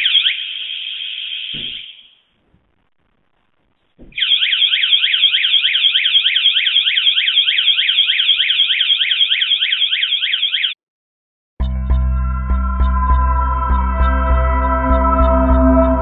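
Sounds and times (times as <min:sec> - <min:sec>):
electronic alarm warble: 0:00.0 - 0:02.2, 0:04.1 - 0:10.8, 0:11.6 - 0:16.0
music: 0:11.6 - 0:16.0.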